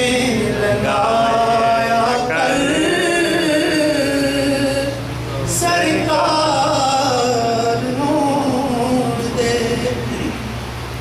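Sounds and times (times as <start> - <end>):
man singing into a microphone: 0.0 - 10.4.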